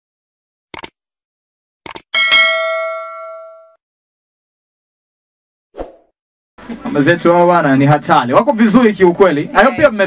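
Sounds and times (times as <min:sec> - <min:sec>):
notification bell chime: 0:02.2 - 0:03.8.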